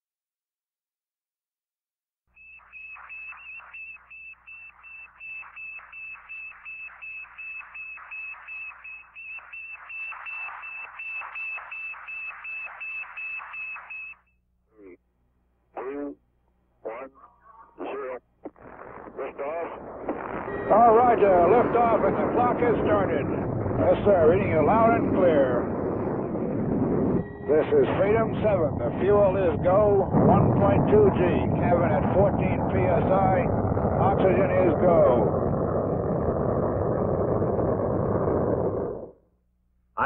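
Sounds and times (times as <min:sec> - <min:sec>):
radio beacon high beeps: 0:02.4 - 0:14.3
radio noise: 0:02.6 - 0:15.0, 0:15.7 - 0:16.2, 0:16.8 - 0:35.3.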